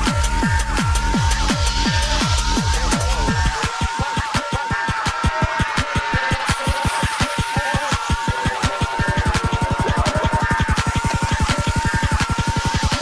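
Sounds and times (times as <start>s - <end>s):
rapid kick drum: 0.0s - 13.0s
high synth riff with glides: 8.4s - 13.0s.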